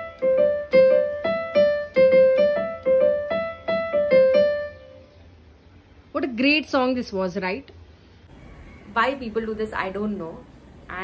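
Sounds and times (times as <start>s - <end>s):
digital keyboard melody: 0.0s - 5.4s.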